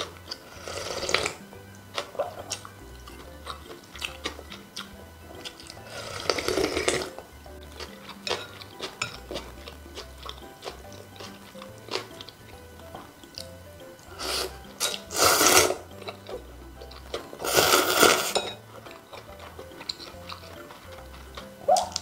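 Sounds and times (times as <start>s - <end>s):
slurping broth: 0.0s - 1.4s, 2.0s - 7.2s, 13.3s - 22.0s
soft background music: 0.0s - 22.0s.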